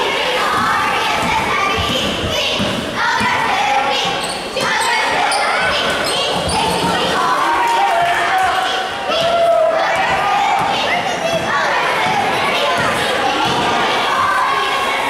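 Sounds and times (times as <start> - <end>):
people shouting in echoing hall: 0.0 - 15.0.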